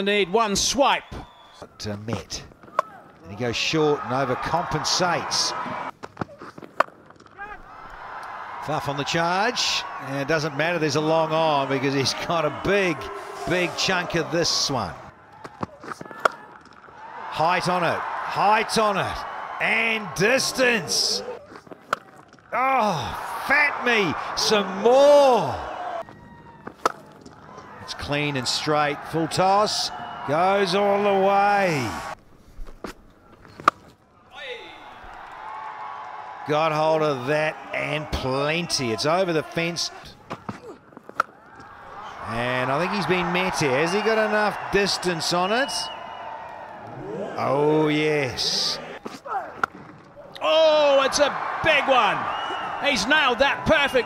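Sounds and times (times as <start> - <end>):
stadium crowd noise: 0.0 - 6.0, 7.3 - 32.2, 32.9 - 54.0
person exclaiming: 22.6 - 23.5.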